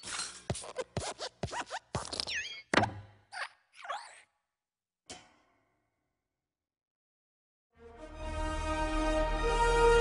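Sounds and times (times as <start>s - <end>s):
springy cartoon squeaks: 0.0s - 4.3s.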